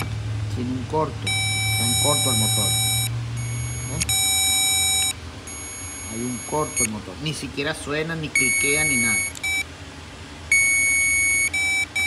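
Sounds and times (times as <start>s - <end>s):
continuity tester beeping: 1.2s - 7.0s, 8.3s - 9.7s, 10.5s - 12.0s.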